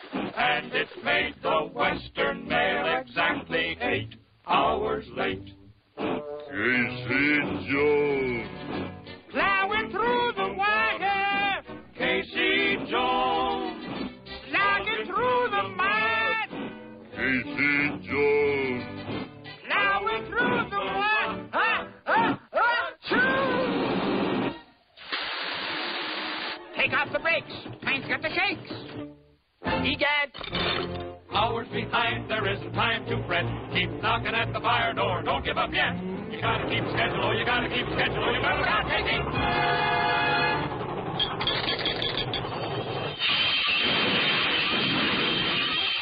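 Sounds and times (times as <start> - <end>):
steam hissing: 25.0 - 26.6
cartoon locomotive hissing screech: 43.1 - 46.0.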